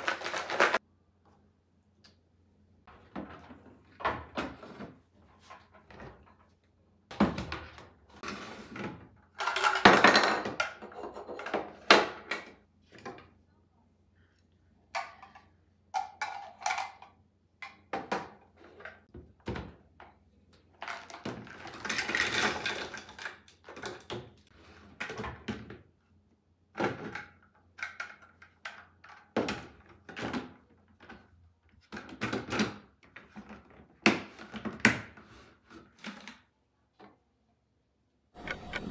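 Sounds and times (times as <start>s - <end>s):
cookies rattling in a jar: 0.0s - 0.8s, 9.4s - 11.6s
plastic parts knocking and clattering: 0.0s - 0.8s, 2.9s - 13.4s, 14.9s - 26.0s, 26.7s - 36.4s.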